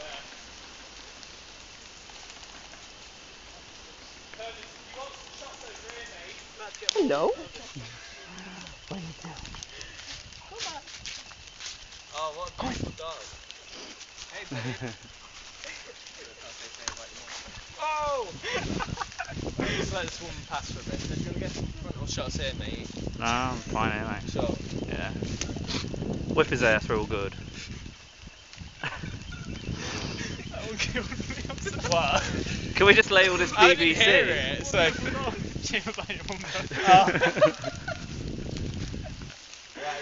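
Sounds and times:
footsteps crunching dry leaves: 0:00.0 - 0:26.3, 0:27.4 - 0:40.0
person laughing: 0:14.4 - 0:16.0, 0:18.4 - 0:20.0, 0:36.1 - 0:38.2.

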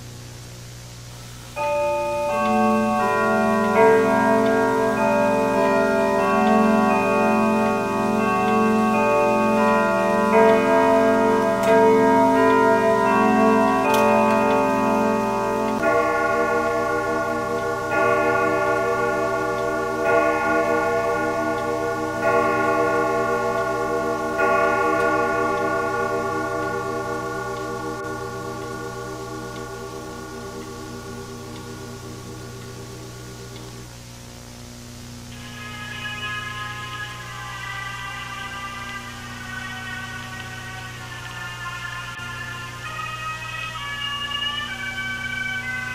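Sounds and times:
clock chimes: 0:01.5 - 0:34.6, 0:35.2 - 0:45.9.

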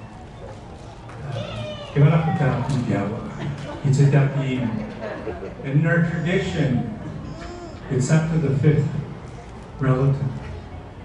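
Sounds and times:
low room murmur: 0:00.0 - 0:11.0
small child whining cry: 0:01.3 - 0:02.7, 0:06.0 - 0:07.9.

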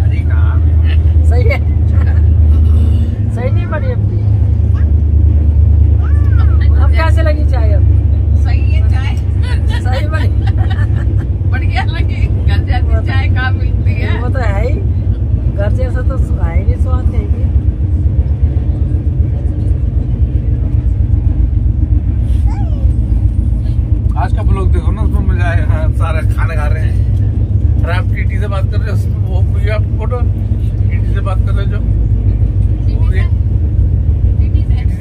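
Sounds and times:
people talking: 0:00.0 - 0:04.9, 0:06.0 - 0:17.5, 0:22.4 - 0:23.0, 0:24.1 - 0:27.0, 0:27.8 - 0:33.4, 0:34.4 - 0:35.0
train rumble: 0:00.0 - 0:35.0.

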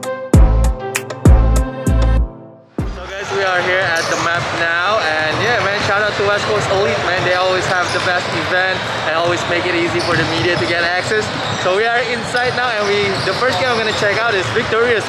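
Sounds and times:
crowd chatter: 0:02.8 - 0:15.0.

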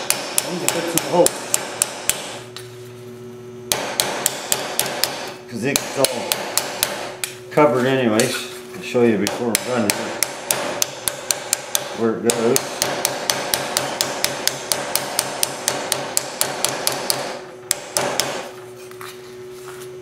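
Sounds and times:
hammer striking steel: 0:00.0 - 0:02.4, 0:03.7 - 0:07.4, 0:09.2 - 0:18.5.

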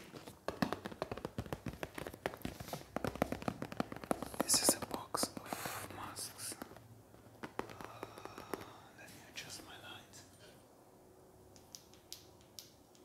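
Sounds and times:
fingernails tapping on cardboard box: 0:00.5 - 0:05.6, 0:07.4 - 0:08.8
soft hiss: 0:03.6 - 0:13.0.

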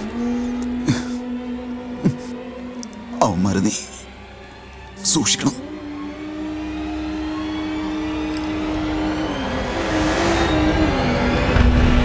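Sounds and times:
long held low note: 0:05.0 - 0:12.0.

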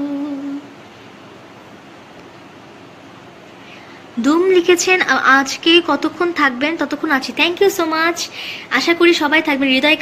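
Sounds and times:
woman humming: 0:00.0 - 0:00.7
faint room hiss: 0:00.0 - 0:10.0.

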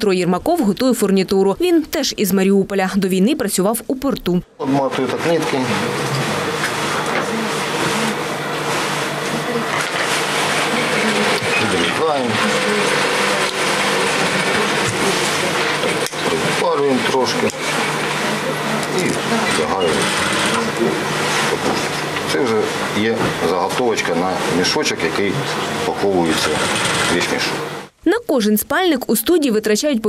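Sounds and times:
sewing machines humming: 0:04.6 - 0:27.9.

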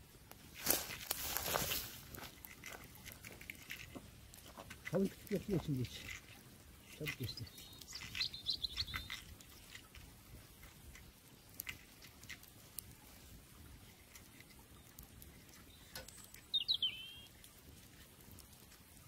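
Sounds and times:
small bird chirping: 0:06.8 - 0:10.0, 0:14.3 - 0:17.5.

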